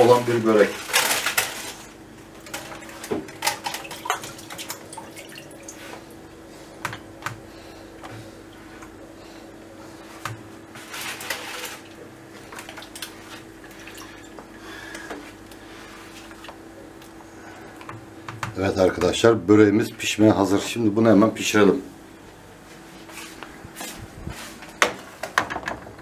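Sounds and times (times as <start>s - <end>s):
pastry sheets rustling: 9.9s - 12.5s.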